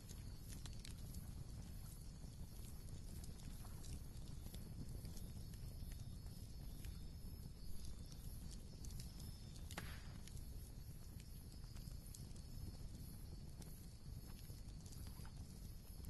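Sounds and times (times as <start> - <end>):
wood fire crackling: 0.0 - 16.0.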